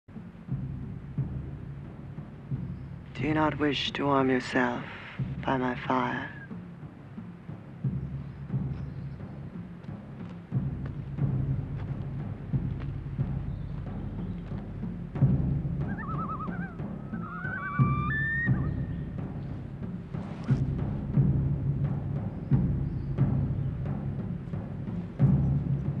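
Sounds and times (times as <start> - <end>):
deep timpani drum strokes: 0.1 - 26.0.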